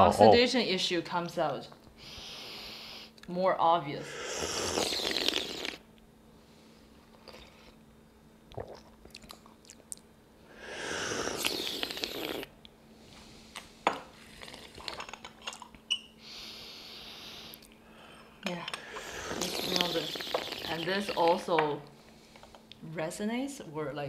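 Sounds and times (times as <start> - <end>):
loud slurps of tea: 4.0 - 5.8, 10.5 - 12.5, 18.8 - 20.9.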